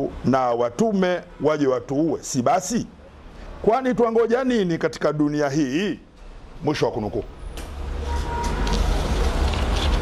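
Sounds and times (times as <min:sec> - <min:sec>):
paper sheets rustling: 0:08.5 - 0:10.0.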